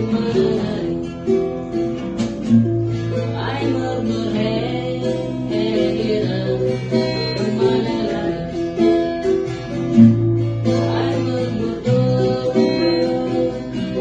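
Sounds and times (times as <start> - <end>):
acoustic guitar: 0.0 - 14.0
ukulele: 0.0 - 14.0.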